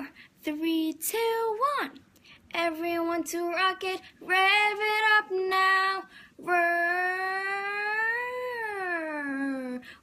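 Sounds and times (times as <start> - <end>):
girl singing long note: 3.8 - 9.9.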